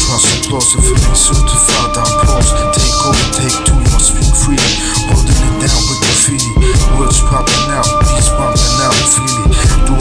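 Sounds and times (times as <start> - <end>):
hip hop beat with heavy bass: 0.0 - 10.0
person rapping: 0.0 - 10.0.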